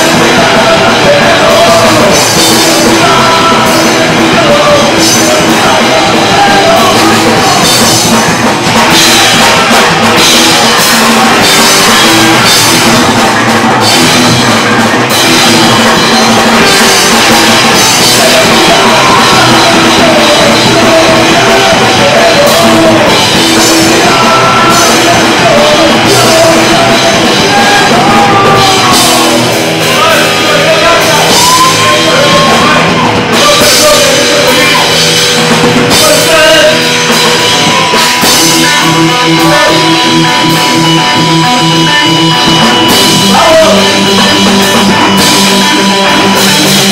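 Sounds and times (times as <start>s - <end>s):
punk rock band playing live: 0.0s - 46.9s
vocals: 0.0s - 46.9s
wavering lead guitar or voice: 0.0s - 46.9s.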